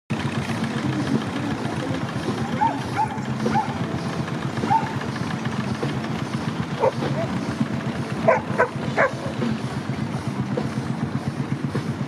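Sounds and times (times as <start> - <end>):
steam engine running: 0.1 - 12.0
dog barking: 2.6 - 3.8, 4.6 - 5.0, 6.8 - 7.3, 8.2 - 9.4.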